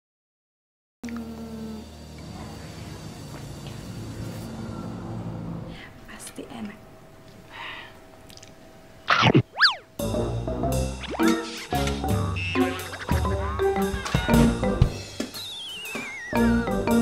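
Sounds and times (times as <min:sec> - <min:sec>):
cartoon boings: 0:09.1 - 0:09.9, 0:11.0 - 0:14.1
wobbling falling whistle: 0:09.1 - 0:09.9, 0:15.4 - 0:16.4
playful background music: 0:09.2 - 0:17.0.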